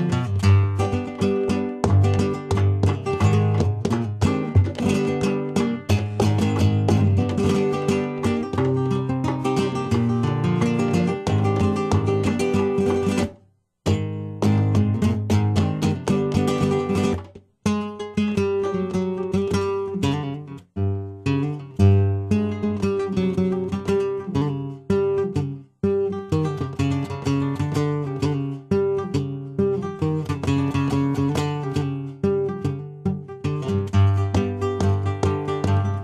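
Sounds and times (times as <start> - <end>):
flamenco acoustic guitar: 0.0 - 36.0.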